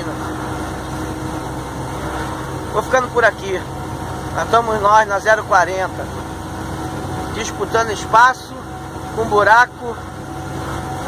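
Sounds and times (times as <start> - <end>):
truck engine drone: 0.0 - 11.0.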